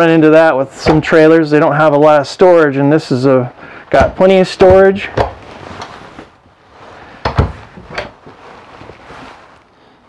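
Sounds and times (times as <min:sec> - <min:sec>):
cabinet doors knocking shut: 0:07.2 - 0:08.1.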